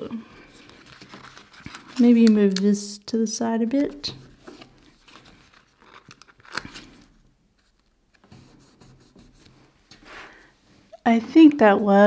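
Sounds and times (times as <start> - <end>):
paper sticker rustling: 0.5 - 2.8.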